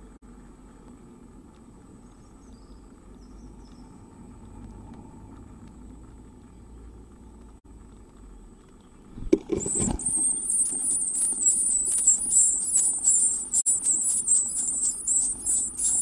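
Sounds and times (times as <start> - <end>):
low rumble and hum: 0.0 - 16.0
faint high chirps: 8.7 - 16.0
high electronic whine: 9.5 - 16.0.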